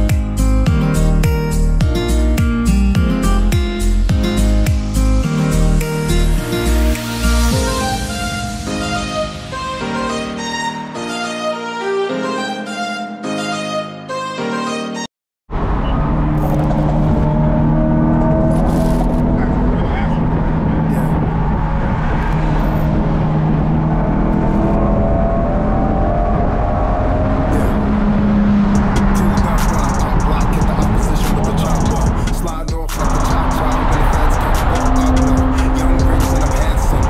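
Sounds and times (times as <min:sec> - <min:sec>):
violin music: 0:00.0 - 0:15.1
car engine and exhaust running: 0:15.5 - 0:37.0.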